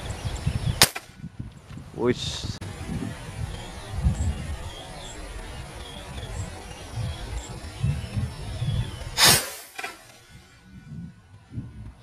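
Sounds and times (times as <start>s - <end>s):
handling rumble: 0.0s - 12.0s
low wind: 0.0s - 12.0s
air rifle shot: 0.8s - 1.1s, 9.2s - 10.0s.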